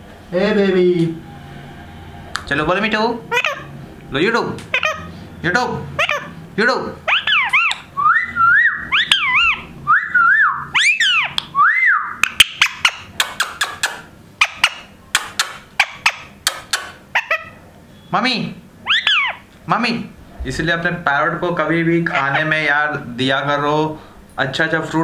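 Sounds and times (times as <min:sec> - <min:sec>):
parrot talking: 0:02.7 - 0:17.6, 0:18.8 - 0:19.5, 0:21.9 - 0:23.2
parrot chirps and clicks: 0:07.1 - 0:07.9, 0:08.9 - 0:09.6, 0:12.2 - 0:17.4
parrot whistling: 0:07.1 - 0:18.1, 0:18.8 - 0:19.5, 0:22.1 - 0:22.7.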